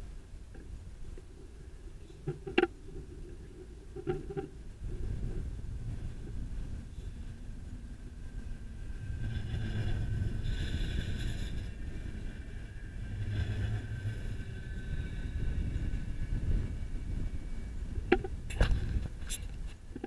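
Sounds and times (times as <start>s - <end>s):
thin high whine: 0.0s - 20.0s
tram rumbling past: 0.0s - 20.0s.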